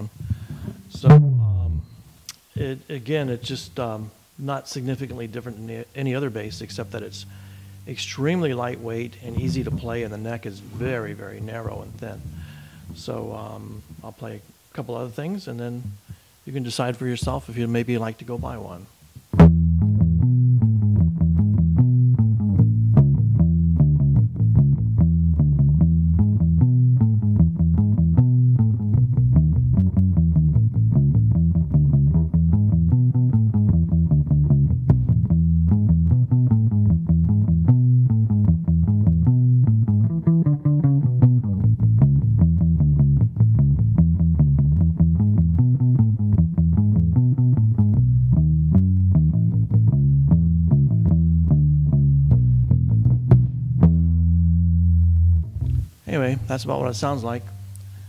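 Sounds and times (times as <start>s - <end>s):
plucked electric bass notes: 0.0s - 14.5s, 15.8s - 16.2s, 17.0s - 58.0s.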